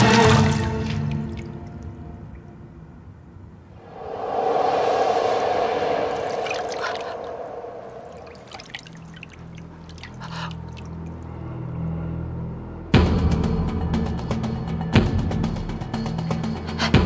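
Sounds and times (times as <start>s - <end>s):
water drips and small splashes: 0.1s - 2.5s, 6.2s - 11.4s
water pouring into a bathtub: 8.0s - 11.0s.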